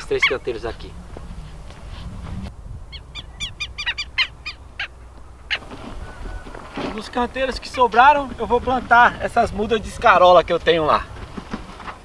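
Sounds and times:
bird calling: 0.0s - 8.6s
low background rumble: 0.0s - 11.6s.

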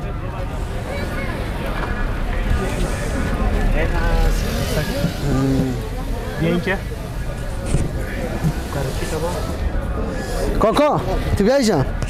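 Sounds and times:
men talking: 0.0s - 12.0s
road traffic rumble: 0.0s - 12.0s.

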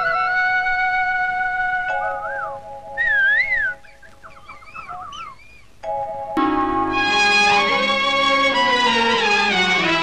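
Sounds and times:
whistle-like warbling calls: 1.8s - 5.8s
held chord film music: 5.8s - 10.0s.

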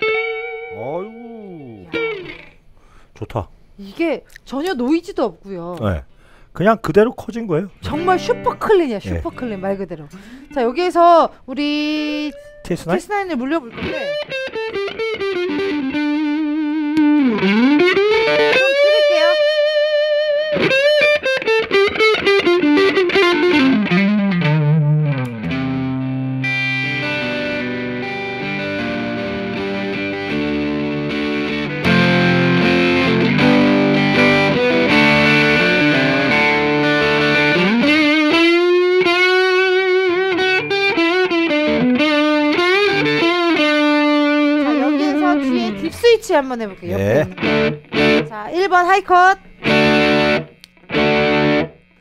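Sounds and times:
overdriven electric guitar: 0.0s - 2.6s, 7.8s - 10.7s, 13.6s - 48.5s, 49.4s - 52.0s.

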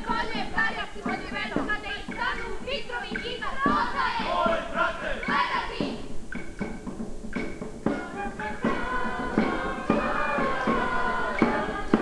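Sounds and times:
cast singing and calling out: 0.0s - 12.0s
music: 0.0s - 12.0s.

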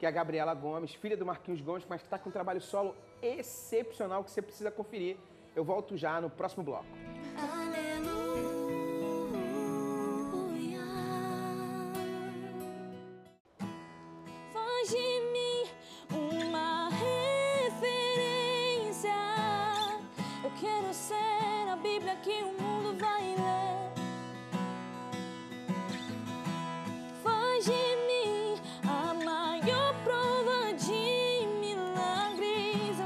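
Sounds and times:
acoustic guitar: 6.8s - 33.0s
woman singing gospel song: 7.3s - 12.7s, 14.5s - 23.9s, 27.2s - 33.0s.

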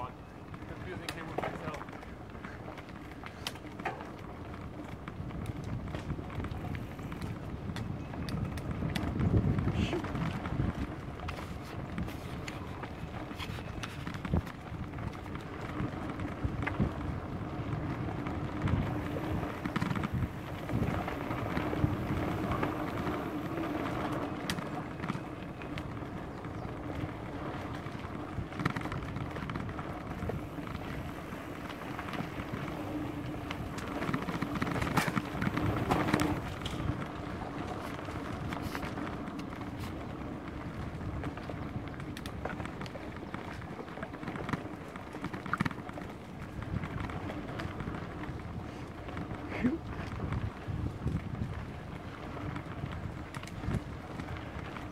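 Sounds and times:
bike rattling over bumps: 0.0s - 54.9s
bike tyres on dirt: 0.0s - 54.9s
wind noise: 0.0s - 54.9s.

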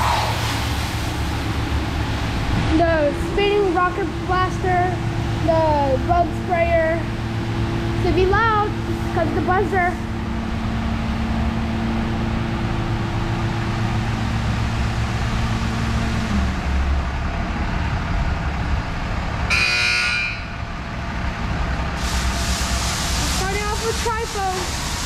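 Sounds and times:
water spray jets hissing: 0.0s - 2.3s, 22.0s - 25.0s
car wash machine hum: 0.0s - 25.0s
loud buzzer: 19.5s - 20.6s.

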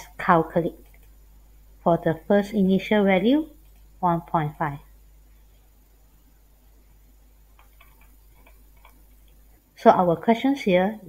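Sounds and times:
stylus tapping on pen tablet: 7.6s - 9.4s.

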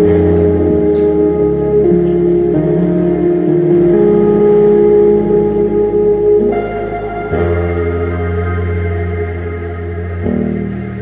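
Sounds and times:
held synth chords: 0.0s - 11.0s
sustained synth bass: 0.0s - 11.0s.

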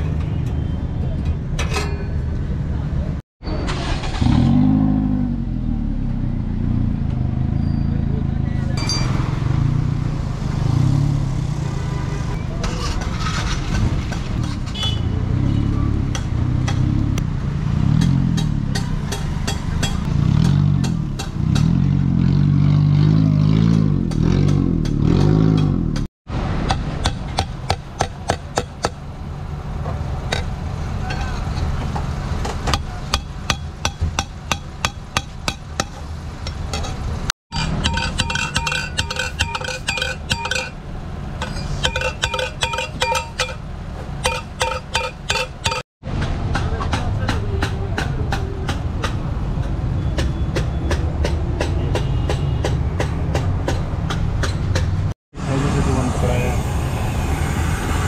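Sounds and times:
hammer striking steel pipe: 18.0s - 21.7s, 32.7s - 36.0s, 36.7s - 40.8s, 41.4s - 43.6s, 44.2s - 45.8s
car engine passing: 55.4s - 58.0s.

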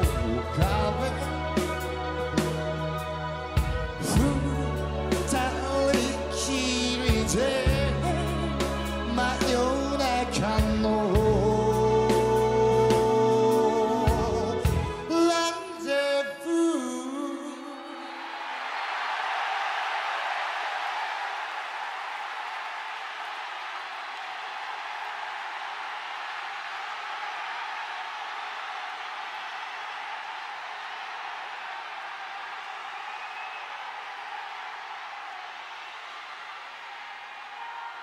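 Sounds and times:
large audience applauding: 18.0s - 38.0s.

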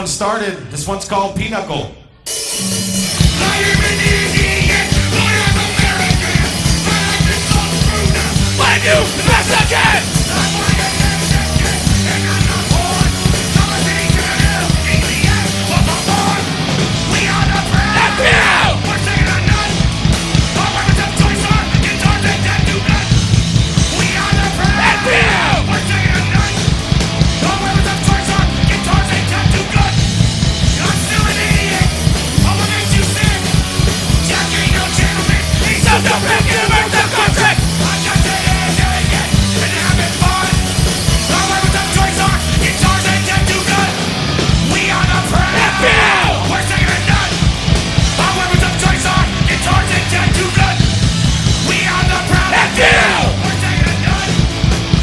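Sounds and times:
bass guitar: 0.0s - 55.0s
drums: 0.0s - 55.0s
punk rock band playing: 2.2s - 55.0s
electric guitars: 2.3s - 55.0s
man yelling vocals: 3.5s - 11.6s, 17.2s - 19.8s, 24.0s - 26.6s, 34.5s - 40.6s, 44.9s - 47.3s, 51.8s - 54.4s.

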